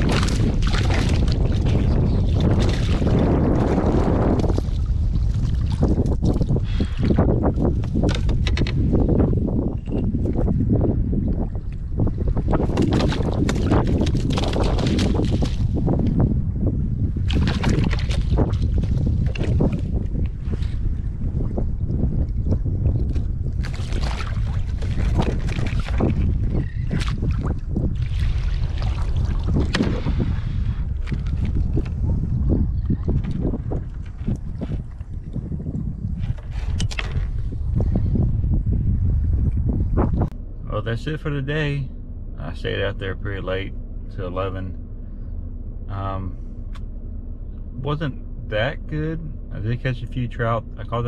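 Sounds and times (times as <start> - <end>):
wind buffeting microphone: 0.0 - 51.0
clicks and rustles of fishing gear: 7.6 - 8.8, 36.2 - 37.5.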